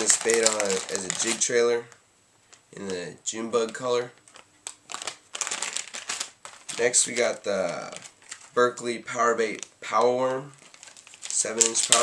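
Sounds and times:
plastic package crinkling: 0:00.0 - 0:01.9, 0:02.5 - 0:12.0.

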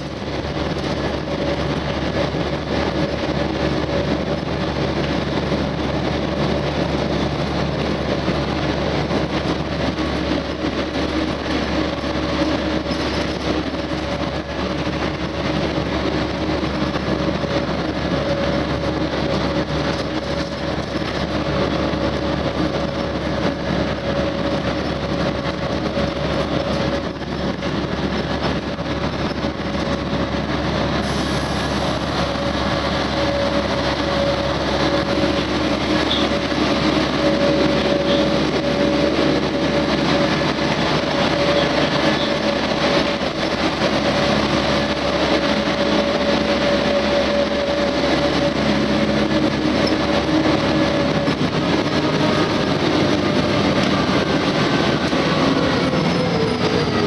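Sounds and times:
bus engine and road noise: 0:00.0 - 0:57.0.

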